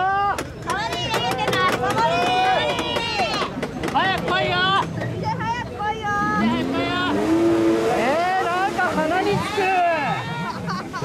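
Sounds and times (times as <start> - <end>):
people's voices: 0.0 - 11.0
jet ski engine revving: 6.1 - 11.0.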